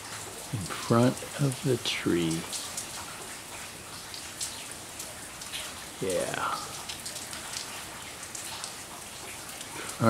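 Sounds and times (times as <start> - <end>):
light rain on leaves: 0.0 - 10.0
raindrops ticking: 0.0 - 10.0.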